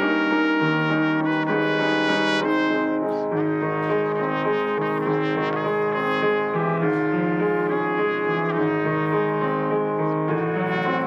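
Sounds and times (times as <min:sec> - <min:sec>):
instrumental hymn music: 0:00.0 - 0:11.0.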